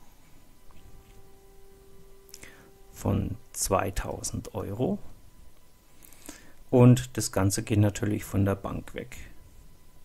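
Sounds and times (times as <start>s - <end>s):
person breathing in: 2.3s - 2.8s, 6.0s - 6.6s.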